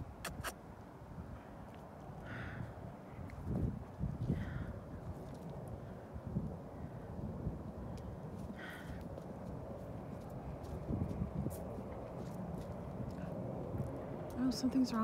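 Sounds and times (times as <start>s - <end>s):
hooves stepping on frozen snow: 8.3s - 15.0s.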